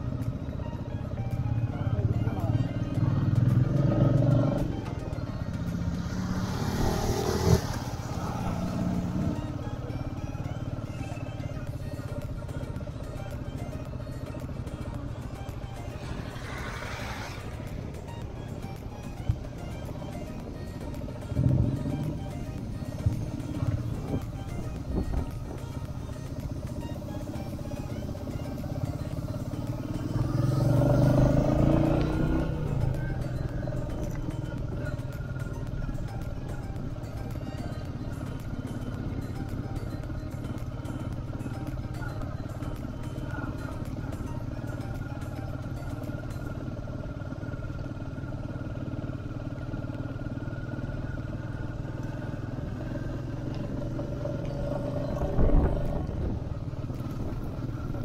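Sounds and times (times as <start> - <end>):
background music: 0.0 - 58.0
motorcycle engine running: 0.0 - 58.0.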